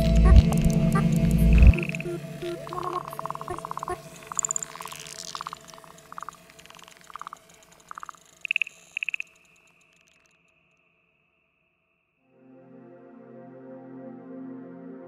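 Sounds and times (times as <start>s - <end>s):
faint held drone: 0.0s - 5.9s
electronic pulsed trills and chirps: 0.0s - 10.8s.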